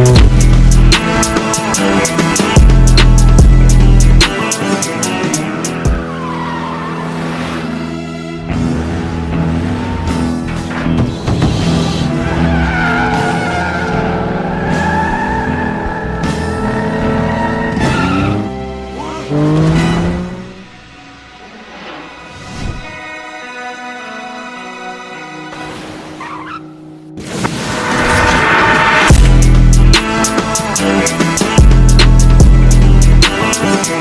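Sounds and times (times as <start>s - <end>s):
car engine running: 0.0s - 21.0s, 29.1s - 34.0s
car tyres squealing: 5.4s - 20.7s, 25.5s - 27.0s.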